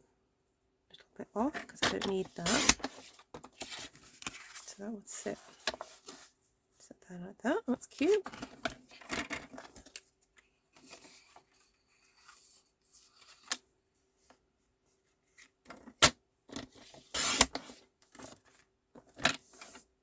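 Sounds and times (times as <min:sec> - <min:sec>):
card sliding on cutting rail: 0:17.1 - 0:17.7.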